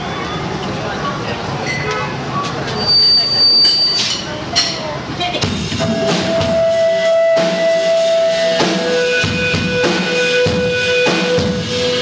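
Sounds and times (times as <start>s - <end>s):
low chatter: 0.0s - 12.0s.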